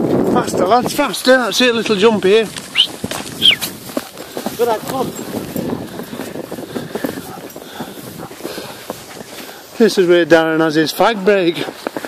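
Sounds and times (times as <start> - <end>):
paws and wheels crunching snow: 0.0 - 12.0.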